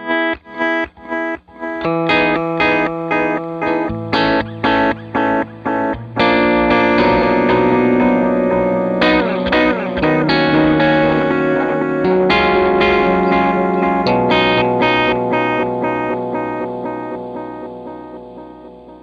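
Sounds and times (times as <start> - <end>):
electric guitar with delay: 0.0 - 19.0.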